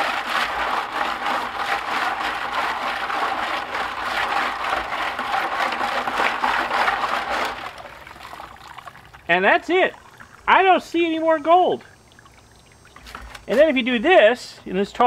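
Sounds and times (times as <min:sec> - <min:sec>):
liquid sloshing in plastic bucket: 0:00.0 - 0:13.9.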